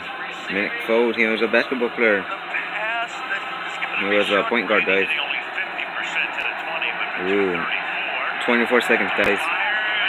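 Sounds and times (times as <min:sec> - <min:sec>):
muffled tv commentator talking: 0:00.0 - 0:10.0.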